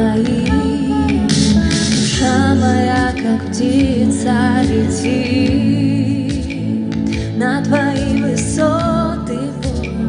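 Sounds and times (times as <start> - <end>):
bass guitar: 0.0 - 10.0
keyboard chords: 0.0 - 10.0
woman singing softly: 0.0 - 10.0.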